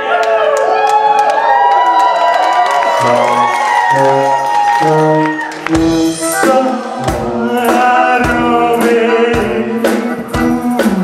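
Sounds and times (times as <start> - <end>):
crowd cheering and whooping: 0.0 - 5.8.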